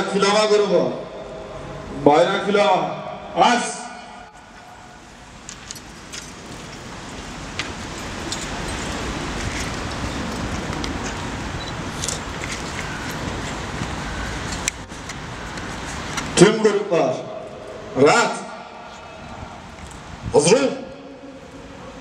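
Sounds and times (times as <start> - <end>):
low rumble of road traffic: 0.0 - 22.0
small clicks and jingles: 5.4 - 13.3.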